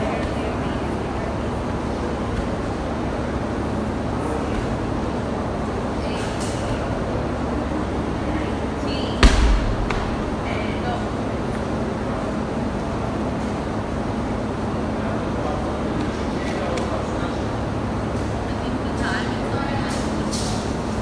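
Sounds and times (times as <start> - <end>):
ball thudding on floor: 9.2 - 10.6
ball slapping wall: 9.2 - 10.7.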